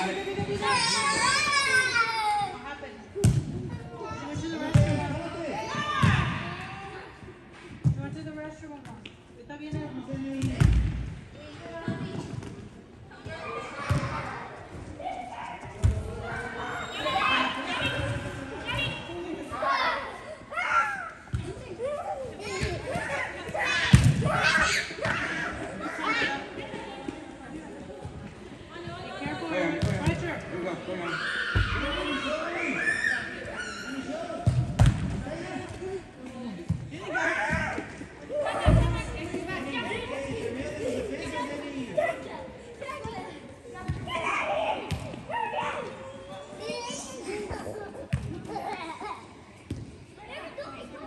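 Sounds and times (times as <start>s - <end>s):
players and spectators chattering: 0.0s - 51.0s.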